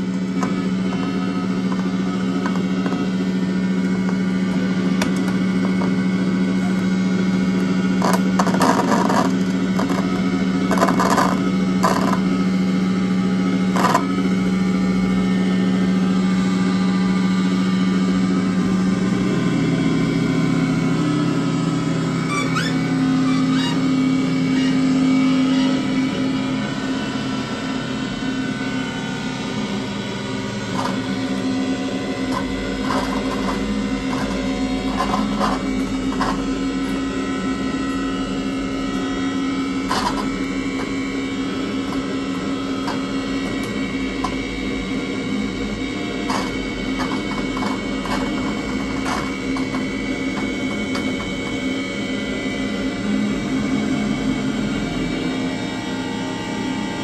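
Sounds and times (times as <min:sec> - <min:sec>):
low electronic droning tones: 0:00.0 - 0:57.0.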